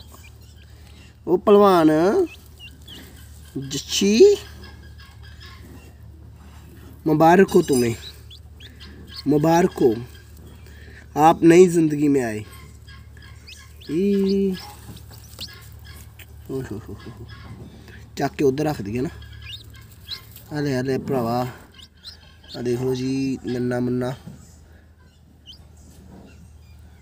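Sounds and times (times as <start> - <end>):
chick peeping: 0.0 - 27.0
person speaking: 13.8 - 14.8.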